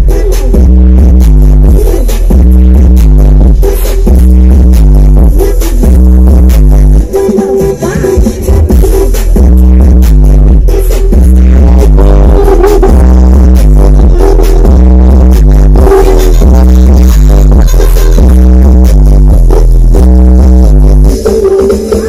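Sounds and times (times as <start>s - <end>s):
heavy bass line: 0.0s - 22.0s
loud dance music: 0.0s - 22.0s.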